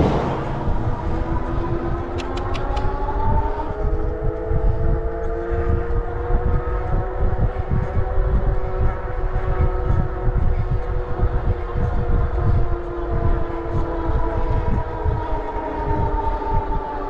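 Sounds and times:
motorcycle engine accelerating: 0.0 - 17.0
wind buffeting microphone: 0.0 - 17.0
quick clicks: 2.1 - 2.9.

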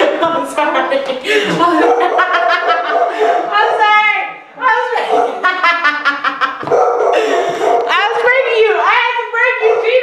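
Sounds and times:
dog barking: 1.7 - 3.8, 5.0 - 5.6, 6.6 - 8.4, 9.5 - 10.0.

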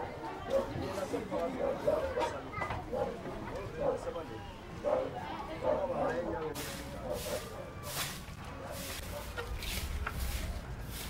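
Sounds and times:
indistinct background voices: 0.0 - 10.8.

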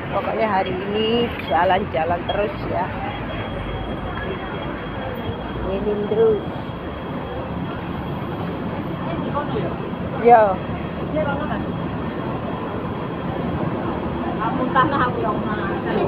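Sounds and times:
crowd noise: 0.0 - 16.0
traffic: 0.0 - 16.0.

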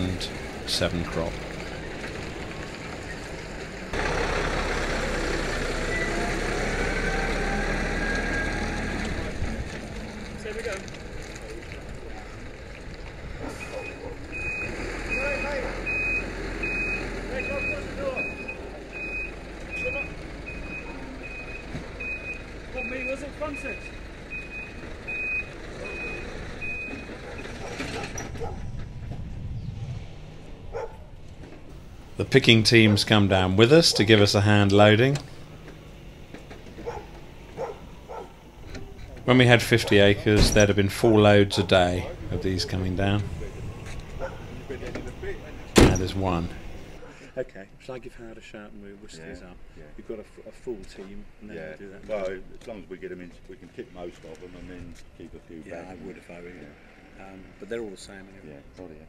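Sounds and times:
diesel engine revving: 0.0 - 47.2
reversing alarm beeping: 13.6 - 27.6.

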